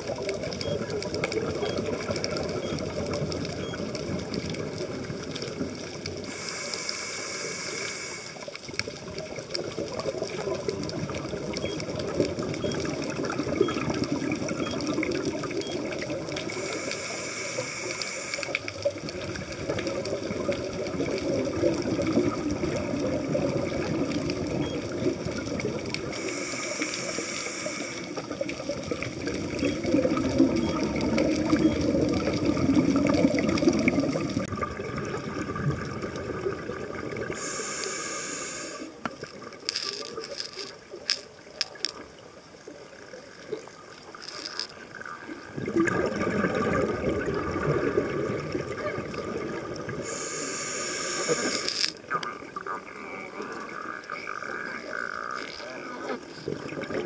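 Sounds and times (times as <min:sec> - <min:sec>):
regulator inhalation hiss: 0:06.2 - 0:08.5, 0:16.6 - 0:18.6, 0:26.1 - 0:28.2, 0:37.3 - 0:39.0, 0:50.0 - 0:52.0
rush of exhaled bubbles: 0:18.8 - 0:26.9, 0:27.6 - 0:39.7, 0:43.5 - 0:52.7, 0:56.1 - 0:57.0.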